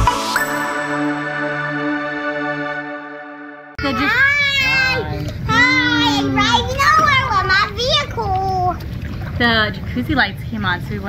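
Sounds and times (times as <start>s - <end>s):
children calling out excitedly: 3.8s - 8.7s
hot tub jets bubbling: 4.0s - 11.0s.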